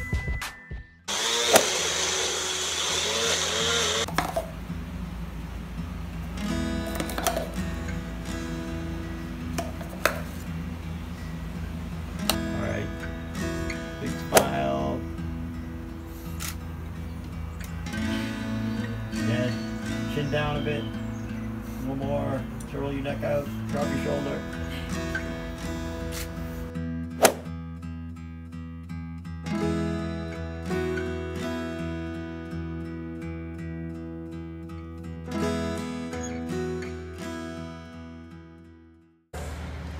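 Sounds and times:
blender motor running: 0:01.1 - 0:04.1.

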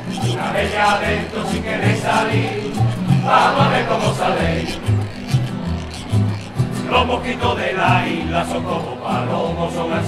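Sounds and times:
acoustic guitars strumming: 0:00.0 - 0:10.0.

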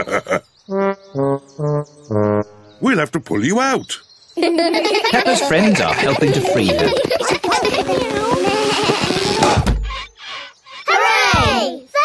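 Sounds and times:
cartoon background music: 0:00.7 - 0:03.1
children's voices: 0:04.4 - 0:09.4, 0:10.8 - 0:12.0.

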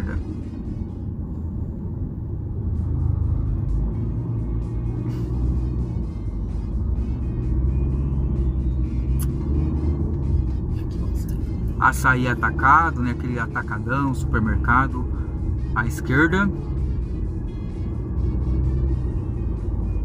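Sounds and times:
car cabin rumble: 0:00.0 - 0:20.0.

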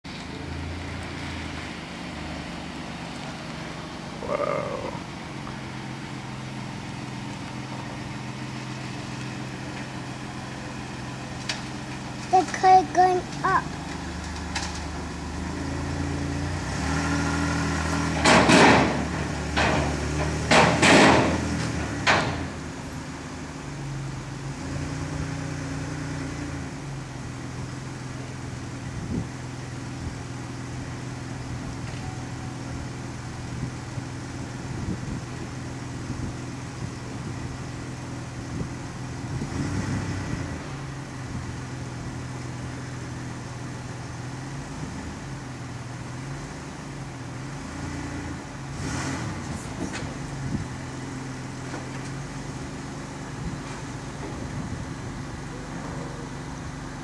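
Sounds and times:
car engines humming: 0:00.0 - 0:57.0.

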